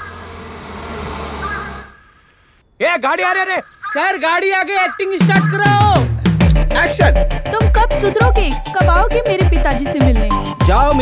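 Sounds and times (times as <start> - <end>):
low hum: 0.0 - 2.0
rush of noise: 0.0 - 2.0.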